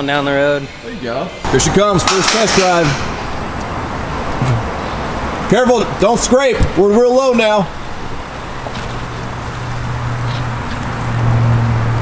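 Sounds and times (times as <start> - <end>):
engine running low hum: 0.0 - 6.1, 7.7 - 12.0
road and wind noise: 0.0 - 12.0.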